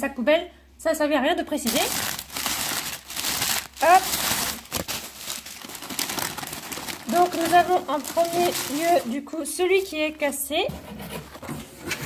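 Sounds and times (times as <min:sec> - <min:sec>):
crumpled newspaper rustling: 0:01.6 - 0:10.1.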